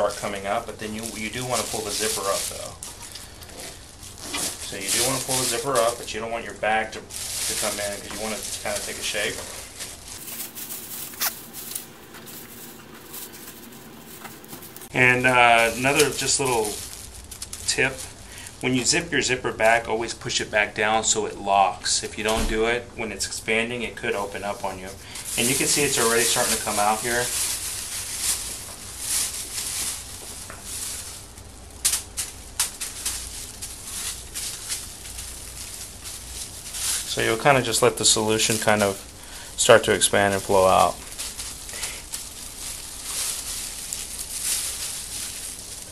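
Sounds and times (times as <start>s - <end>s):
plastic bag crinkling: 0.0s - 19.8s, 24.2s - 45.9s.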